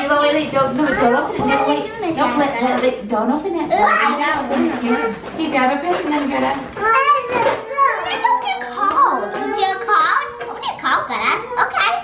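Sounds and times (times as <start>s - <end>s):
young children chattering and squealing: 3.6s - 5.3s, 6.7s - 12.0s.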